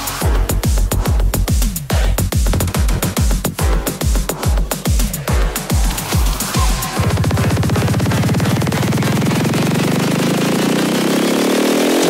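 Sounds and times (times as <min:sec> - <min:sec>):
driving bass line: 0:00.0 - 0:12.0
rising buzzy synth tone: 0:03.7 - 0:11.0.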